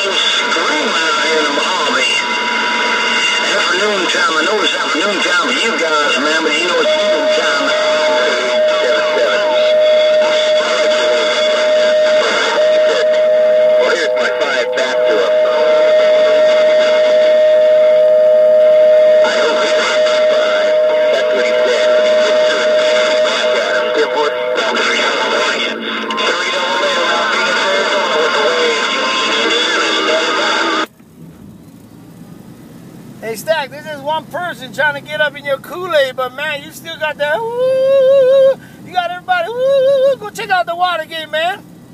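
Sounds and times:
garbled radio voice: 0:00.0 - 0:17.4, 0:19.0 - 0:30.9, 0:33.2 - 0:41.7
radio static: 0:00.0 - 0:17.8, 0:18.5 - 0:30.9, 0:33.2 - 0:37.6, 0:38.6 - 0:41.7
radio music: 0:00.0 - 0:30.9, 0:33.2 - 0:41.9
radio whistle: 0:00.0 - 0:30.9, 0:33.3 - 0:41.9.

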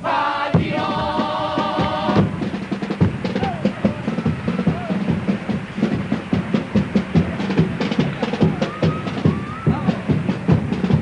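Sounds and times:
bass drum and snare drum: 0:00.4 - 0:11.0.

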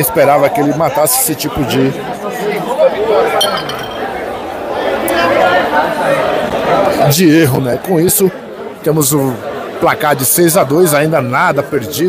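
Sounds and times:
crowd chatter: 0:00.0 - 0:12.0
pool balls clicking: 0:03.4 - 0:04.3.

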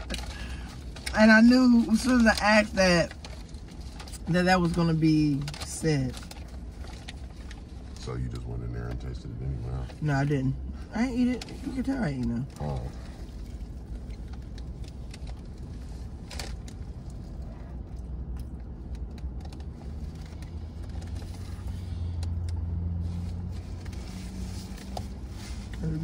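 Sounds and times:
low rumble inside car cabin: 0:00.0 - 0:26.0.

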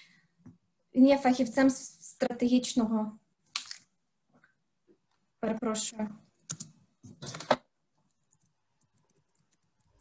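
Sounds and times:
keyboard typing clicks: 0:06.4 - 0:07.6.

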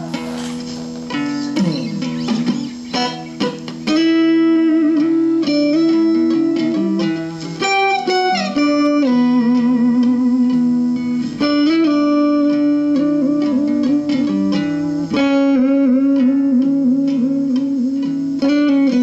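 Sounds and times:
electric guitar lead line: 0:00.0 - 0:19.0.

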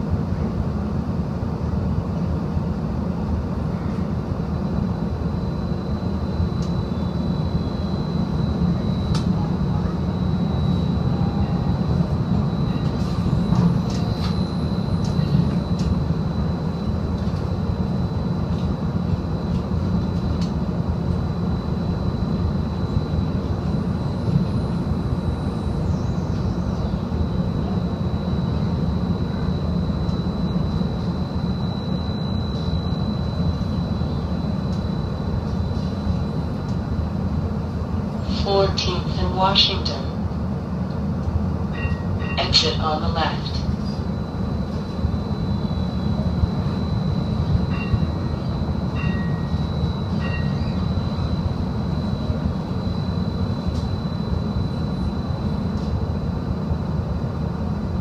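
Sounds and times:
thin high whine: 0:04.5 - 0:40.4, 0:41.6 - 0:58.0
wheels rumbling on rail: 0:08.6 - 0:21.9, 0:43.6 - 0:53.9.

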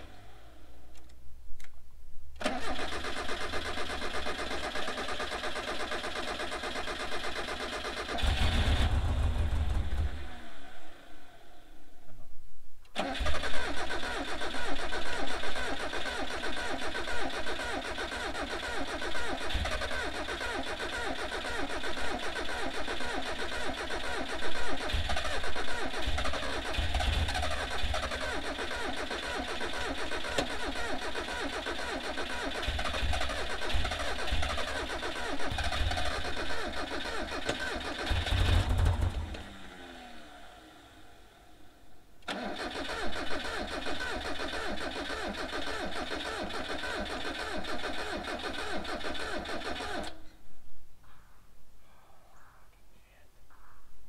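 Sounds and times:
engine cranking on starter: 0:02.4 - 0:10.7, 0:13.0 - 0:41.1, 0:42.2 - 0:50.3.

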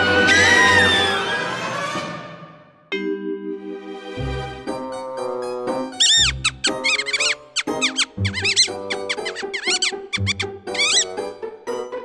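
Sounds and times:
background music: 0:00.0 - 0:12.0
squeaky cartoon mouse chattering: 0:06.0 - 0:11.2.

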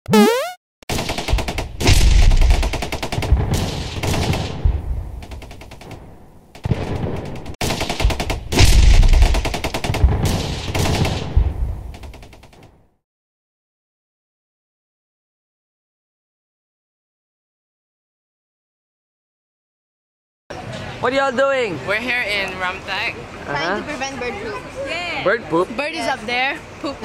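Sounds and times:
rising and falling sweep: 0:00.1 - 0:00.6
rapid rattle of sharp cracks: 0:00.9 - 0:04.6, 0:05.2 - 0:12.8
deep booms: 0:01.8 - 0:05.2, 0:08.4 - 0:09.4, 0:10.0 - 0:11.9.

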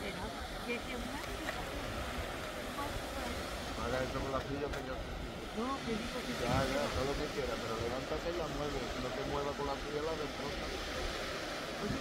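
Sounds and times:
faint voices talking: 0:00.0 - 0:12.0
small waves surf: 0:00.0 - 0:12.0.

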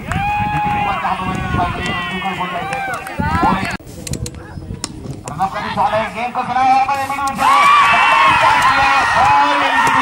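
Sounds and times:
men shouting: 0:07.3 - 0:10.0.

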